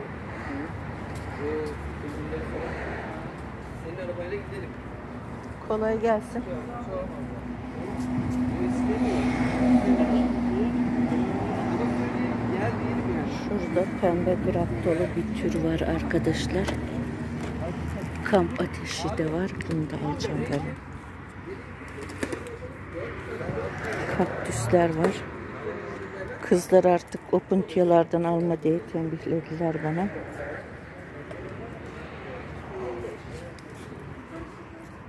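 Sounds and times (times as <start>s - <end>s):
voices talking: 0.0s - 35.0s.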